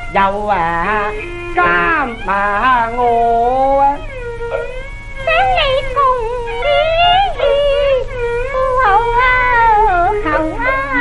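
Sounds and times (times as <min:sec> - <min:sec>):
low hum from old recording: 0:00.0 - 0:11.0
opera singing in a high voice: 0:00.0 - 0:11.0.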